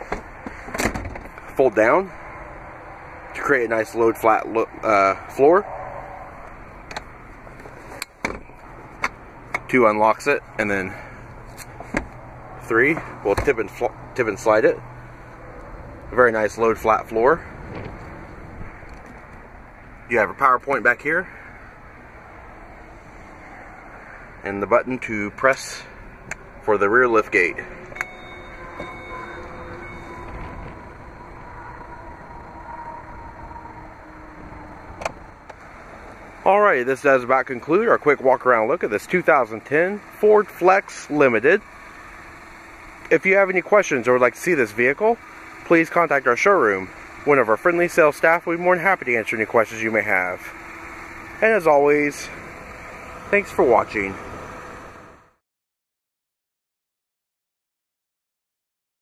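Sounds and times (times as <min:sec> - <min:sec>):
liftgate latching thud: 0:00.1 - 0:01.4
electric motor whine: 0:52.3 - 0:55.3.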